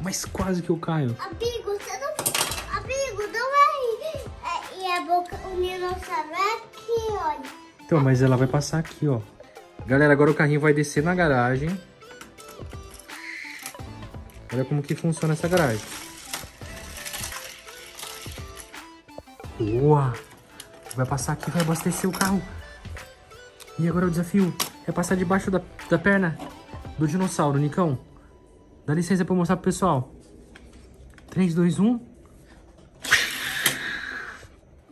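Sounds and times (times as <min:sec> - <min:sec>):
background music: 0:00.0 - 0:34.9
toy car rolling down plastic track: 0:15.2 - 0:18.7.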